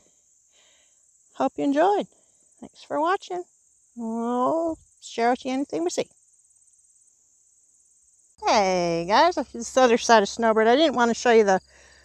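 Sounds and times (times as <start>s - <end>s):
insect chorus trilling: 0.0s - 12.0s.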